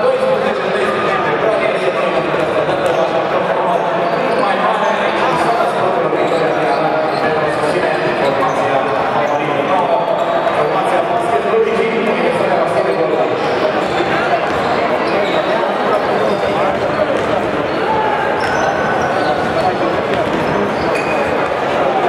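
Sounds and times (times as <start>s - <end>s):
crowd voices talking and calling: 0.0s - 22.0s
basketball bouncing on court: 13.8s - 15.4s, 16.3s - 17.6s, 18.4s - 21.6s.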